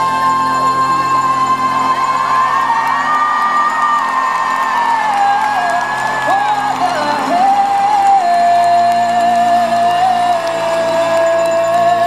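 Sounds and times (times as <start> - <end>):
crowd whooping and cheering: 0.1 - 8.4.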